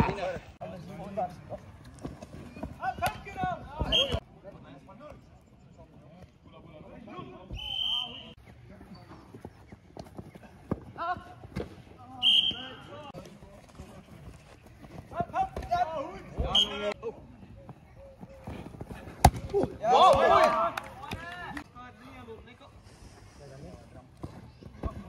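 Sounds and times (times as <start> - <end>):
referee's whistle blasts: 3.8 - 4.2, 7.5 - 8.4, 12.2 - 12.9, 16.5 - 16.9
players shouting: 19.0 - 21.6.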